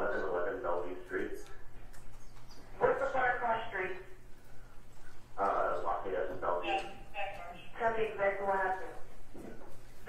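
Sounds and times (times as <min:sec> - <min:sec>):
muffled phone call voices: 0:02.6 - 0:09.6.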